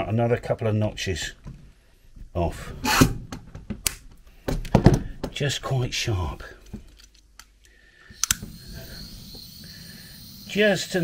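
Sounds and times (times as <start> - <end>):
torch igniter clicks: 8.1 - 8.6
small flame hissing: 8.1 - 11.0.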